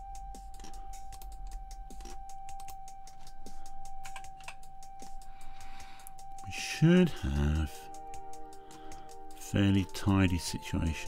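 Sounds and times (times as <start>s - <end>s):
faint steady high tone: 0.0s - 11.0s.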